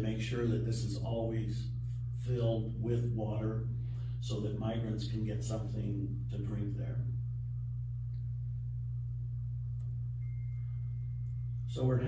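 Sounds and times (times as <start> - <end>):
low hum: 0.0 - 12.0
faint thin high tone: 10.2 - 11.8.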